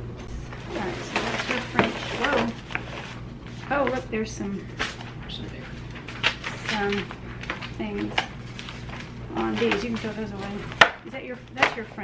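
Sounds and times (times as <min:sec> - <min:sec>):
paper and plastic bags rustling: 0:00.5 - 0:11.0.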